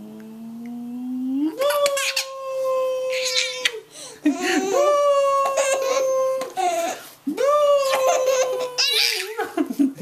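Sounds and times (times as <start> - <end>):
baby laughing: 1.6 - 2.4, 3.1 - 7.0, 7.8 - 9.6.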